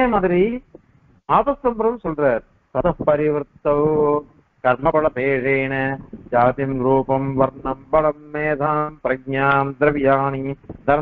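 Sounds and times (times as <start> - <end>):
man chanting: 1.3 - 11.0.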